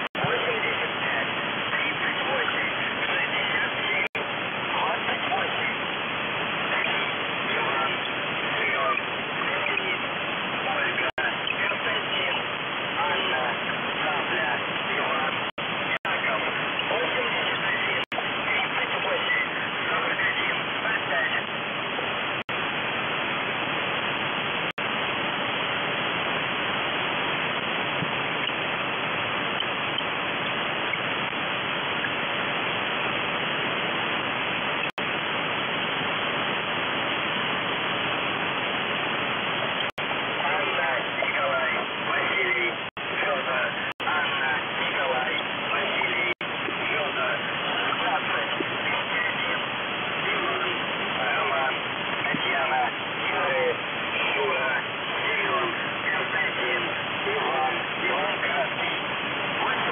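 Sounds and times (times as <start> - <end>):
shortwave radio static hiss: 0.0 - 59.9.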